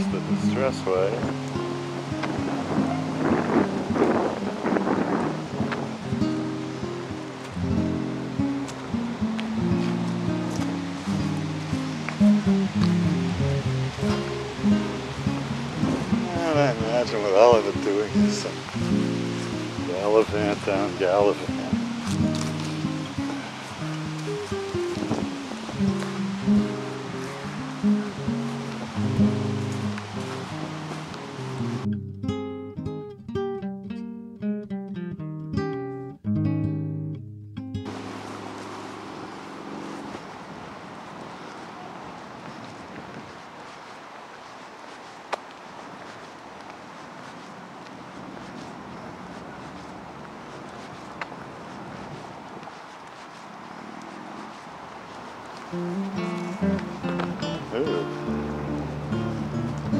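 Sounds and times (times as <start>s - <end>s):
steady rushing noise: 0.0s - 31.9s, 37.9s - 59.9s
acoustic guitar plucking: 0.0s - 40.3s, 55.7s - 59.9s.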